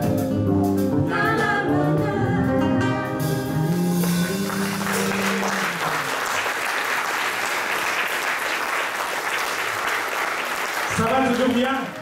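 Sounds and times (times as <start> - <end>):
audience applauding: 4.0 - 12.0.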